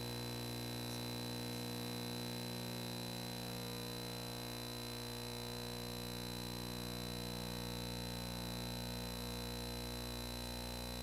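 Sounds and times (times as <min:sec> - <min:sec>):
electrical hum and buzz: 0:00.0 - 0:11.0
thin high whine: 0:00.0 - 0:11.0.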